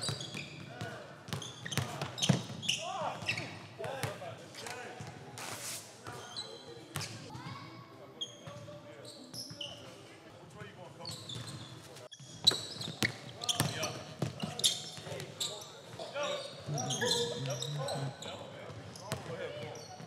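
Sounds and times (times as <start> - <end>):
sneakers squeaking: 0.0 - 4.1, 6.1 - 7.5, 11.0 - 20.0.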